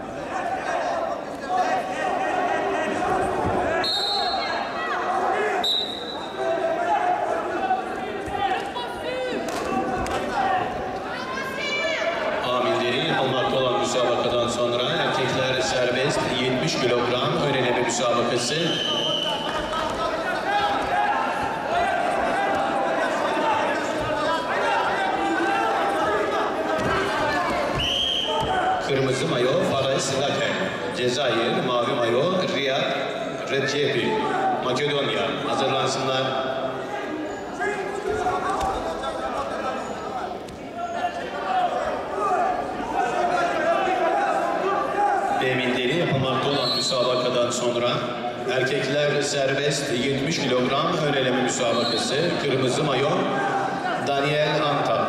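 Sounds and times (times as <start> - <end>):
murmur of voices: 0.0 - 55.0
high whistle blasts: 3.8 - 4.6, 5.6 - 6.4, 27.8 - 28.5.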